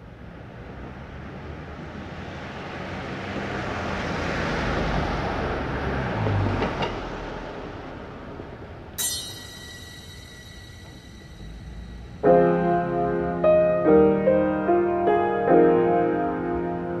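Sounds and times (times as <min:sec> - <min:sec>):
wash of ambient noise: 0:07.8 - 0:13.8
ringing keyboard notes: 0:09.0 - 0:14.2.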